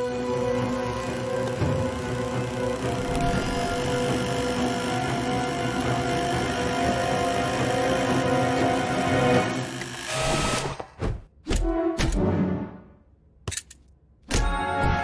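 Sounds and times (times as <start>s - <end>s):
orchestral film music: 0.0s - 9.9s, 11.5s - 13.1s
electric hair clippers buzzing: 0.0s - 10.8s.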